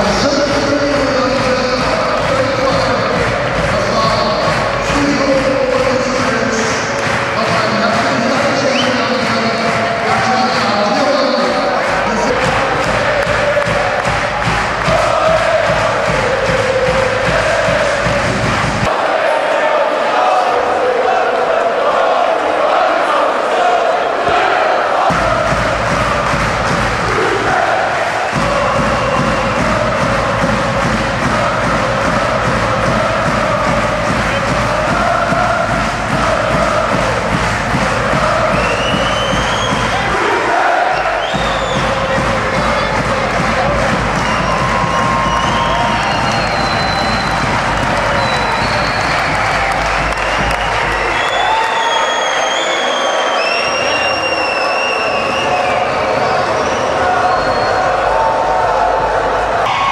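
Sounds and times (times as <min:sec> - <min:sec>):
arena crowd cheering and singing: 0:00.0 - 0:59.9.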